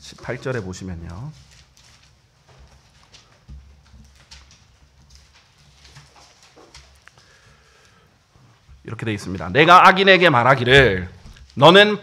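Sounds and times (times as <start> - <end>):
pages being turned: 0.1 - 7.5.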